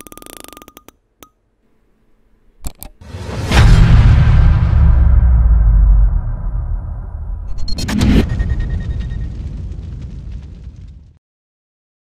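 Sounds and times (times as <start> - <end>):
sharp noisy hit: 3.0 - 10.6
deep rumble: 3.2 - 11.2
crackles: 4.2 - 11.2.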